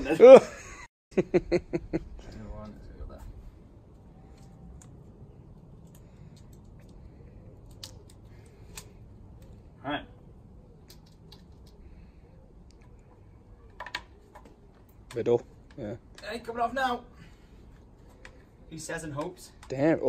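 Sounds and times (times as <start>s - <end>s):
low steady background noise: 0.0s - 20.0s.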